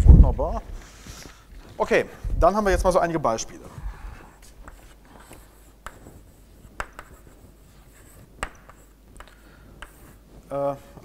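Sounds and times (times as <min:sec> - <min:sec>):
chalk scratching on blackboard: 0:03.6 - 0:11.0
chalk tapping on board: 0:04.4 - 0:10.5.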